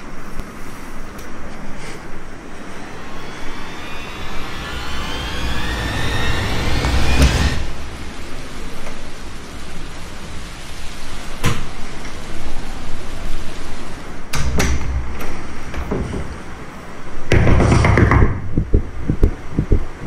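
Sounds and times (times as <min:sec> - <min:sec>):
steady low rumble: 0:00.0 - 0:11.4, 0:15.0 - 0:20.0
rising swell to deep boom: 0:02.3 - 0:09.8
sharp hit: 0:02.6 - 0:08.8.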